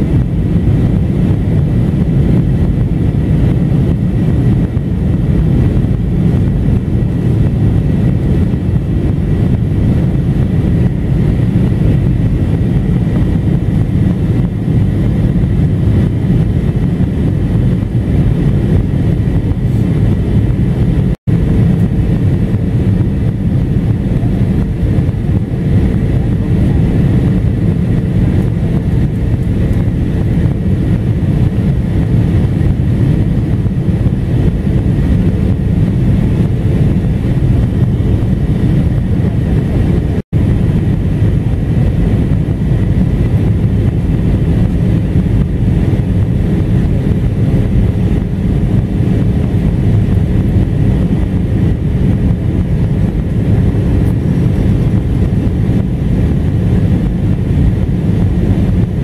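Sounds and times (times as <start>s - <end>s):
airplane engine and airflow roar: 0.0s - 59.0s.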